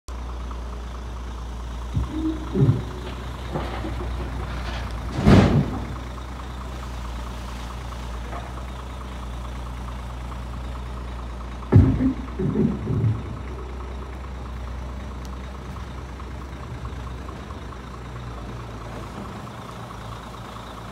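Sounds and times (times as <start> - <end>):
diesel engine idling: 0.1 - 20.9
short thump: 2.0 - 6.0, 11.7 - 13.3.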